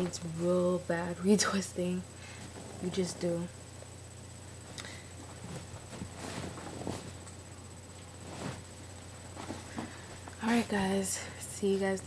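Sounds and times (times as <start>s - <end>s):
steady low hum: 0.0s - 12.0s
rustling of person moving: 4.6s - 10.8s.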